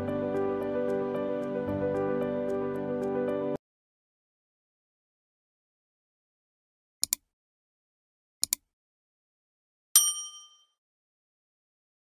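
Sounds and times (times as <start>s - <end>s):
notification bell ding: 10.0s - 10.8s.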